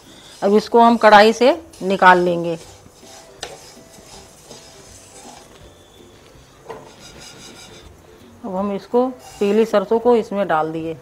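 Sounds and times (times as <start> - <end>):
spatula scraping seeds in pan: 0.0 - 6.0, 6.7 - 8.0, 9.1 - 10.0.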